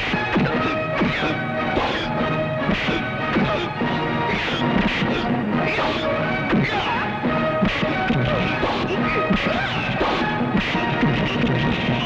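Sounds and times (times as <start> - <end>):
action background score: 0.0 - 12.0
punch and hit sound effects: 2.7 - 3.7.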